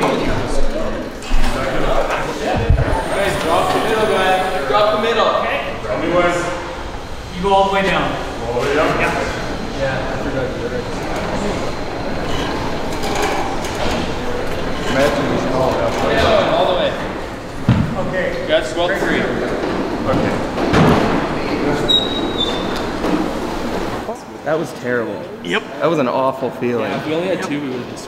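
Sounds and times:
low voices: 0.0s - 28.0s
high squeak: 2.8s - 5.9s, 21.8s - 22.9s.

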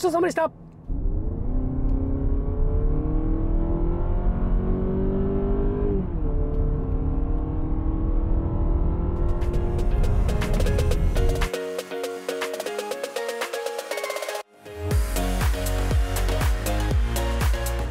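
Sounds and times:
car engine accelerating: 0.4s - 11.5s
music: 9.4s - 17.9s.

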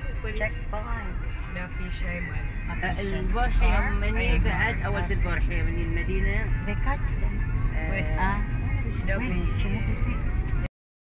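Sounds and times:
car driving heard from inside: 0.0s - 10.7s.

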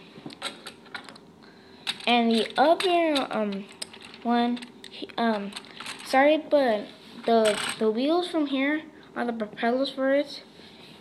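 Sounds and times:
plastic pieces clicking on table: 7.4s - 7.8s.

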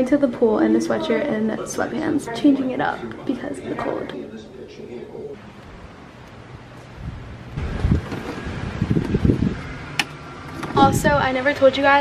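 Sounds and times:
wind buffeting microphone: 7.0s - 10.0s, 10.6s - 11.4s.

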